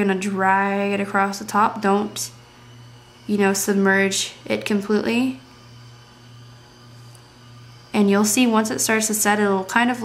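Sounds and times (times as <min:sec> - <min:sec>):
faint high whine: 0:00.0 - 0:10.0
low background hum: 0:00.0 - 0:10.0.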